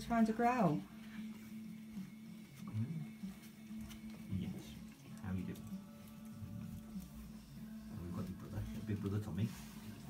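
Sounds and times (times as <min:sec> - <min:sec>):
puppies scuffling and scratching: 0:01.1 - 0:10.0.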